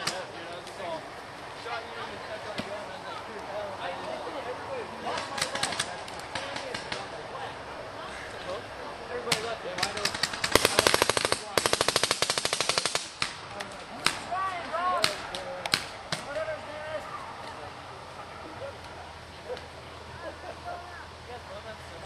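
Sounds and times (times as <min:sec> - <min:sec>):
paintball markers firing: 0:05.1 - 0:07.1, 0:09.3 - 0:14.2.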